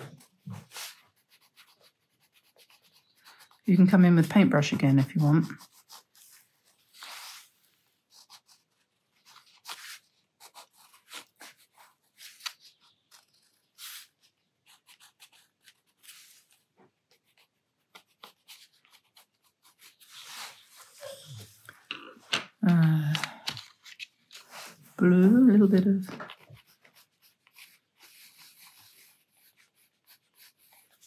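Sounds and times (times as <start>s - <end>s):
pencil scratching on paper: 0.0s - 21.6s, 24.4s - 31.0s
paper rustle: 4.3s - 21.7s, 22.6s - 31.0s.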